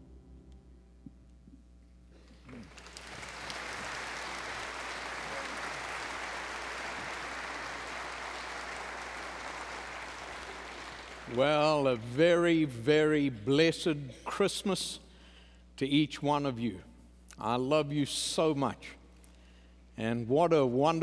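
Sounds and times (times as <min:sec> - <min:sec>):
congregation clapping: 0:02.2 - 0:12.7.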